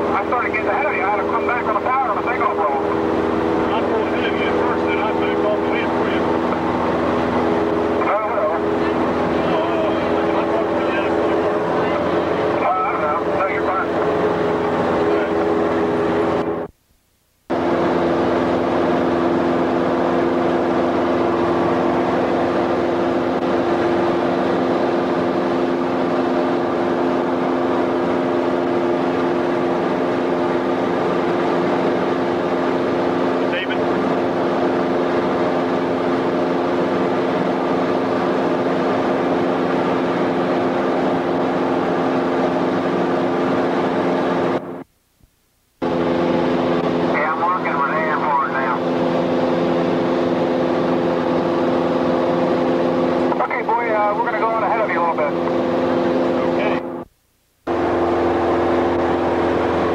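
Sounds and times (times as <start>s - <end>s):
aircraft propeller engine drone: 0.0s - 16.8s, 17.5s - 44.9s, 45.8s - 59.9s.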